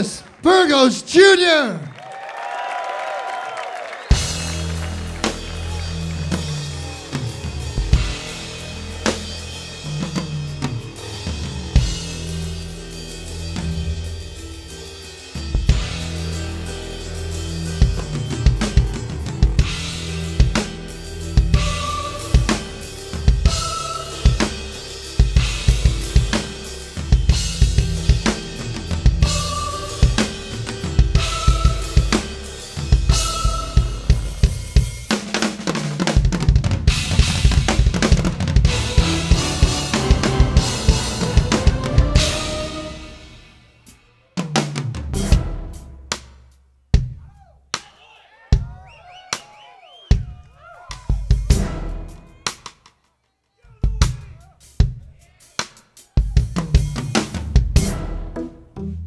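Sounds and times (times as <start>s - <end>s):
drum kit solo: 4.1s - 47.9s, 50.1s - 52.8s, 53.8s - 58.1s.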